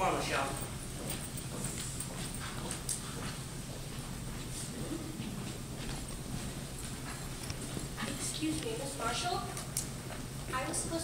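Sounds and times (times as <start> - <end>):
footsteps on stage floor: 0.0 - 11.0.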